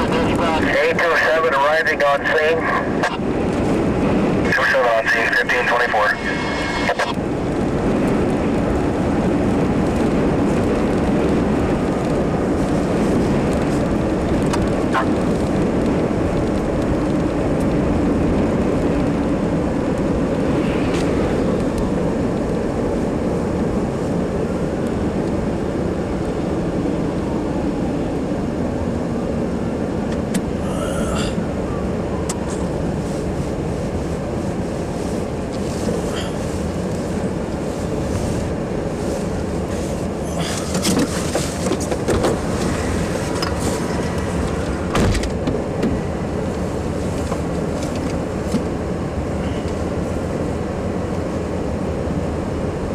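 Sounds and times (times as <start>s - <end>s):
vehicle engine and road noise: 0.0s - 52.9s.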